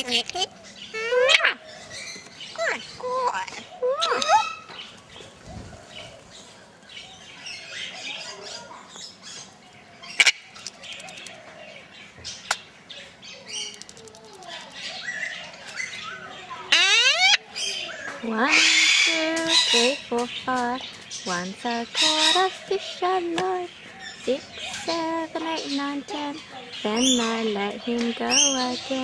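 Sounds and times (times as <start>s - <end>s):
parrot chattering: 0.0s - 1.7s, 2.5s - 4.7s, 13.4s - 20.0s, 21.3s - 23.2s
sharp clicks: 13.6s - 14.6s.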